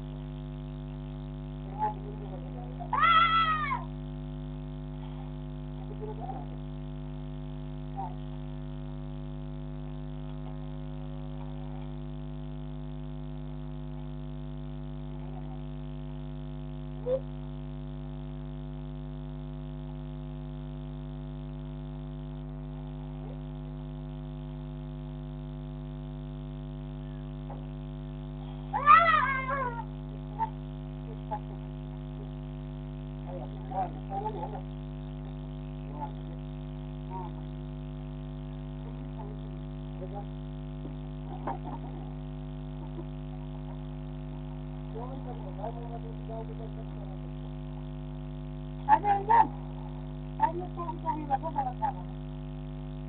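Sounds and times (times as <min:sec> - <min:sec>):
steady electrical hum: 0:00.0 - 0:53.0
cat meowing: 0:02.9 - 0:03.9, 0:28.7 - 0:29.9.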